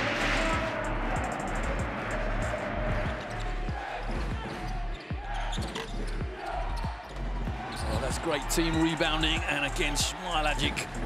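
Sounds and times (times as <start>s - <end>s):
music with steady bass: 0.0s - 11.0s.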